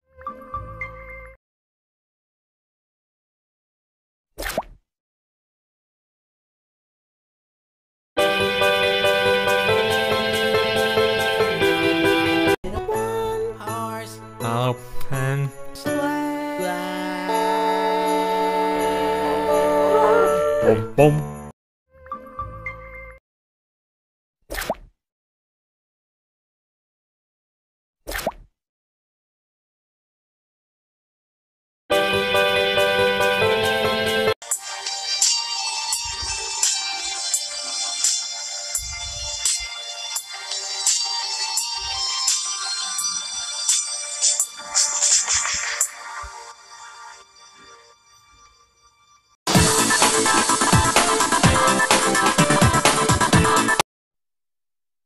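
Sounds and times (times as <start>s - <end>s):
cartoon pop with rising pitch: 4.4s - 4.8s, 24.5s - 24.9s, 28.1s - 28.5s.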